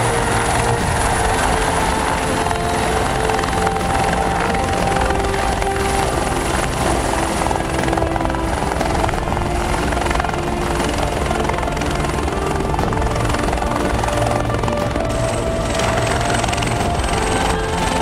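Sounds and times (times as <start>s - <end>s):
background music: 0.0s - 18.0s
helicopter rotor and turbine: 0.0s - 18.0s.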